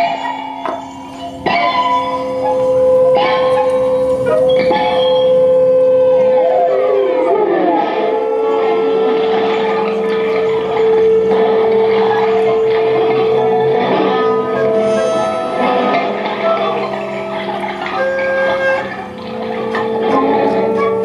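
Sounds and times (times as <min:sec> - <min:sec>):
electroacoustic held tone: 0:00.0 - 0:21.0.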